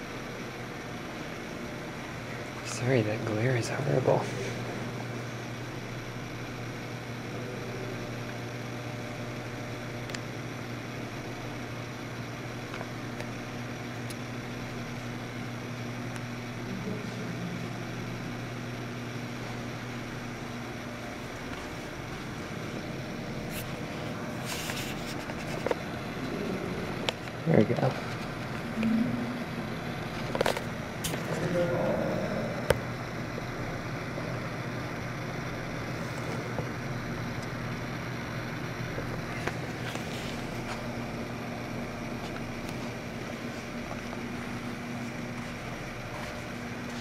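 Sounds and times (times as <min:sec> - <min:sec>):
low mechanical hum: 0:00.0 - 0:47.0.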